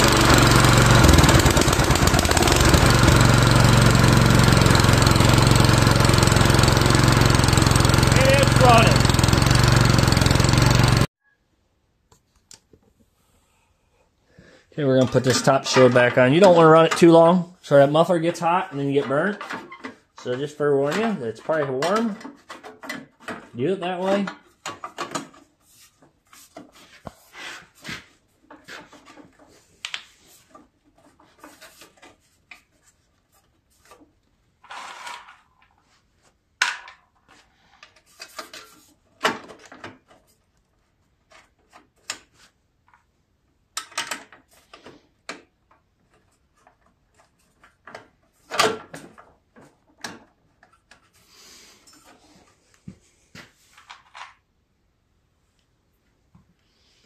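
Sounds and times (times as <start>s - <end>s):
plastic shroud knocking and scraping: 18.4s - 23.6s.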